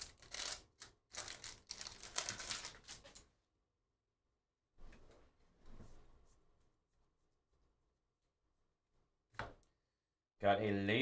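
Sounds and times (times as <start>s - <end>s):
foil wrapper crinkling: 0.0s - 3.2s.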